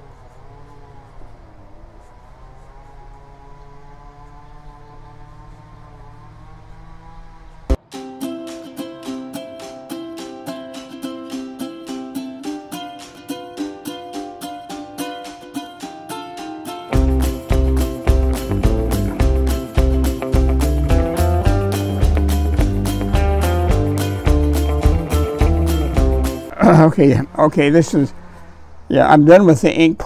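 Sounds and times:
plucked string melody: 0:07.7 - 0:26.5.

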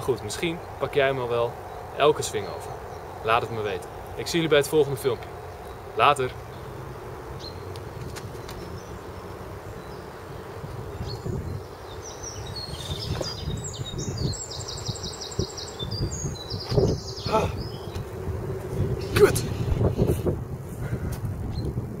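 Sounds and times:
songbird trilling: 0:00.0 - 0:07.7, 0:08.4 - 0:18.0
low outdoor rumble: 0:00.0 - 0:22.0.

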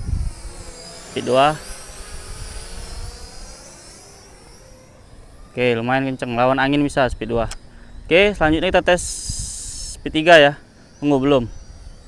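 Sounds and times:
wind rumbling on microphone: 0:00.0 - 0:03.6, 0:06.5 - 0:10.4
drone propellers whining: 0:00.0 - 0:12.0.

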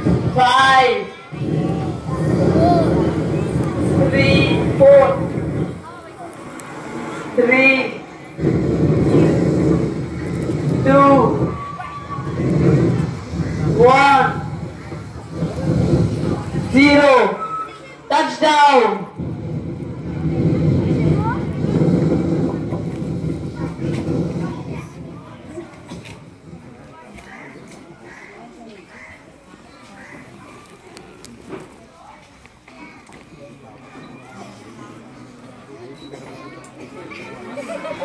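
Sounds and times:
loud low rumble: 0:01.3 - 0:17.2, 0:19.1 - 0:26.9.

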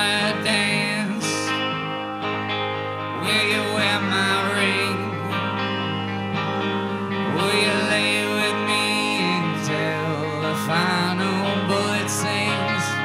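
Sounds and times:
guitars: 0:00.0 - 0:13.0
live rock band playing: 0:00.0 - 0:13.0
wavering melody line: 0:00.0 - 0:13.0.

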